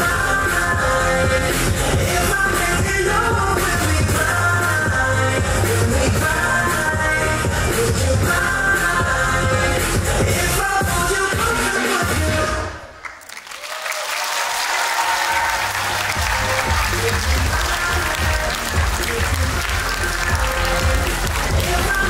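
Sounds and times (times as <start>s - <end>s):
music with strong bass: 0.0s - 12.8s, 15.4s - 22.0s
dance music: 0.0s - 13.0s, 14.7s - 22.0s
audience applauding: 13.0s - 22.0s.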